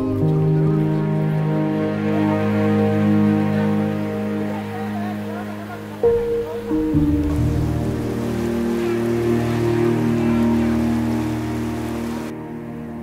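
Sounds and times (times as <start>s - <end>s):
rain falling: 0.0s - 12.3s
slow music of held notes: 0.0s - 13.0s.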